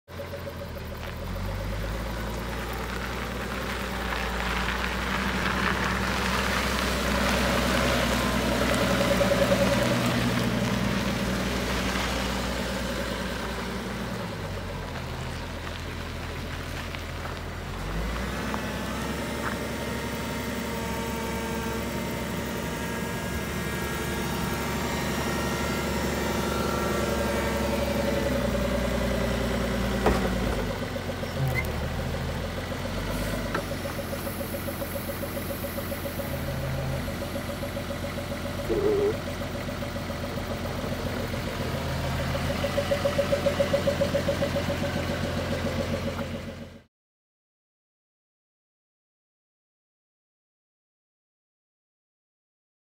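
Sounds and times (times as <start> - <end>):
forklift engine running: 0.1 - 46.8.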